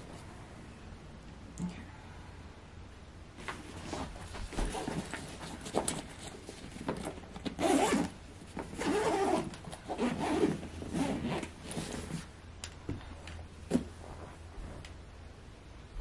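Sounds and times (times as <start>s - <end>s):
bag rustling: 3.4s - 12.3s
backpack zipper pulled: 7.6s - 8.1s, 8.8s - 12.1s.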